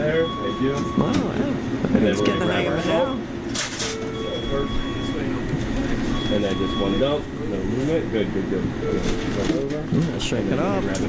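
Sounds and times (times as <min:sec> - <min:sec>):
electronic alarm tone beeping: 0:00.0 - 0:01.2, 0:02.1 - 0:03.3, 0:03.9 - 0:07.7.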